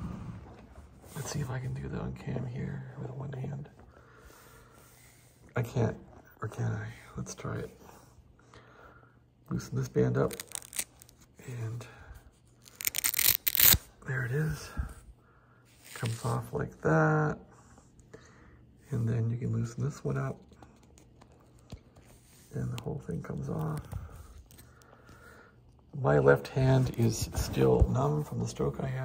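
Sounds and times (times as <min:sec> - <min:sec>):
hook-and-loop strap ripping open: 0:10.2 - 0:11.3, 0:12.6 - 0:13.9.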